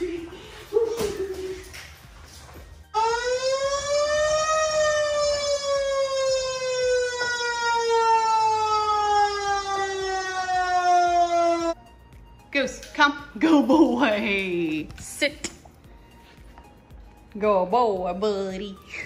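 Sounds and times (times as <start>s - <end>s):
fire truck siren wailing: 3.0s - 11.8s.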